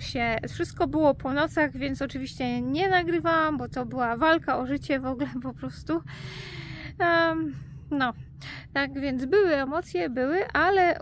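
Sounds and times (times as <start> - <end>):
woman's sharp in-breath: 6.1 - 7.0.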